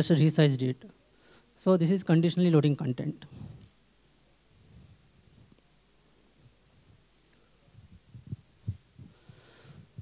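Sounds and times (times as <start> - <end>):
faint breath-like hiss: 1.0 - 1.6, 7.3 - 10.0
microphone handling thumps: 3.3 - 3.7, 7.7 - 10.0.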